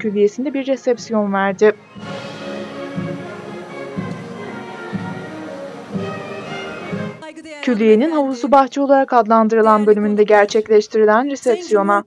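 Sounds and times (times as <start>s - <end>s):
orchestral strings sustained notes: 1.7s - 7.3s.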